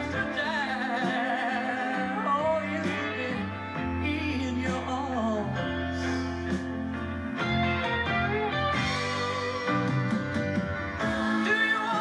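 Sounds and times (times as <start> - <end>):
guitar: 0.0 - 12.0
slow ballad band accompaniment: 0.0 - 12.0.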